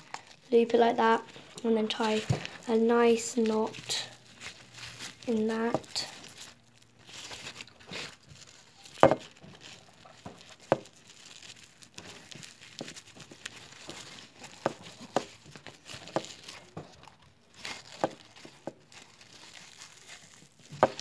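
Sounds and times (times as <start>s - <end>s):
foil crinkling: 0.0s - 21.0s.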